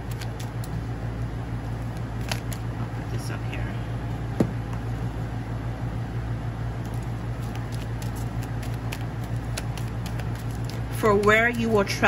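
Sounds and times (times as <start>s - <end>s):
cards being shuffled: 0.0s - 0.9s, 1.8s - 2.7s, 6.8s - 12.0s
steady low hum: 0.0s - 12.0s.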